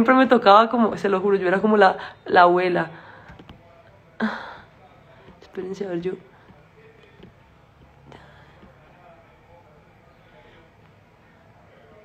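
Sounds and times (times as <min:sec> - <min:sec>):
faint low hum: 0:00.0 - 0:12.0.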